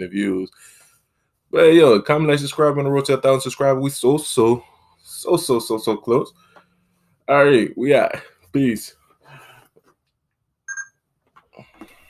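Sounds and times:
short electronic beep: 10.7s - 10.9s.

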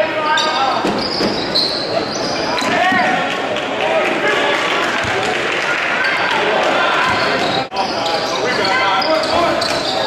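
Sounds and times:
sneakers squeaking: 0.3s - 3.2s, 7.0s - 10.0s.

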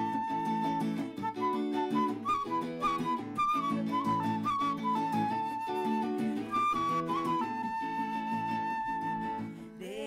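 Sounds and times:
flute melody: 0.0s - 9.6s
strummed acoustic guitar: 0.0s - 9.8s.

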